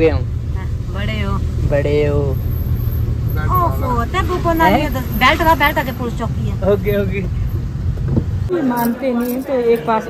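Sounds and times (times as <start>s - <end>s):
car engine rumble and road noise: 0.0s - 10.0s.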